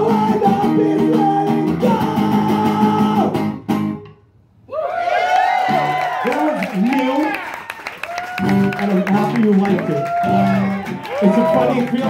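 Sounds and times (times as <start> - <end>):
man singing: 0.0 - 3.4
acoustic guitar strumming: 0.0 - 4.2
audience cheering and whooping: 4.7 - 12.0.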